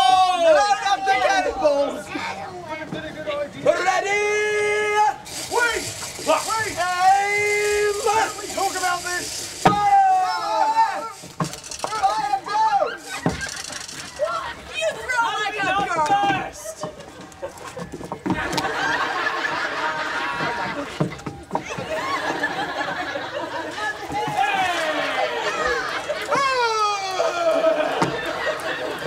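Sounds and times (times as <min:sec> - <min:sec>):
people crying out: 0:00.0 - 0:02.6, 0:03.6 - 0:29.0
steady hiss: 0:04.1 - 0:14.3.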